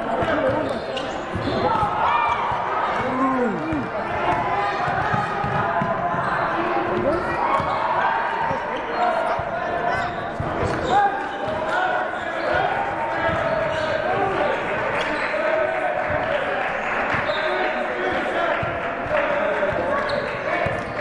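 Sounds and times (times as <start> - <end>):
voices calling out in a gym: 0.0 - 21.0.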